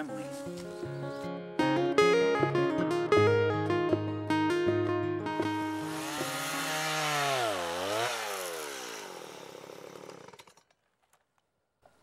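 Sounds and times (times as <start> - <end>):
chainsaw running: 5.6 - 10.7.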